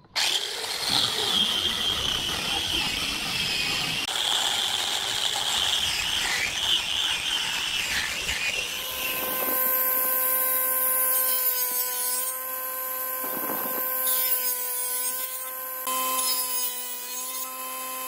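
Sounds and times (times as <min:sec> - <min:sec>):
angle grinder sanding wood: 0:00.0 - 0:18.0
table saw blade humming: 0:00.0 - 0:18.0.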